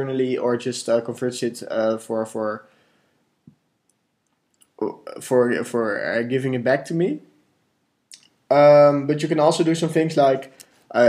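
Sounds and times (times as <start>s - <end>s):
man speaking: 0.0s - 2.7s, 4.8s - 7.4s, 8.1s - 11.0s.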